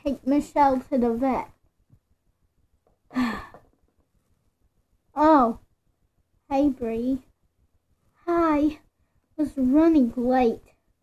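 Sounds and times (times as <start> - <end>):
person sighing: 3.1 - 3.8.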